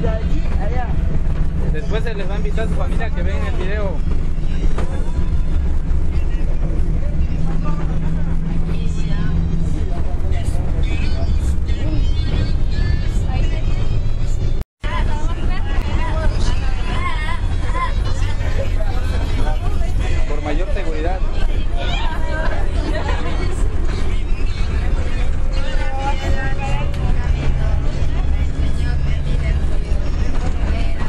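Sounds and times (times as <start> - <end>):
bus rumbling: 0.0 - 31.0
passengers talking: 0.0 - 31.0.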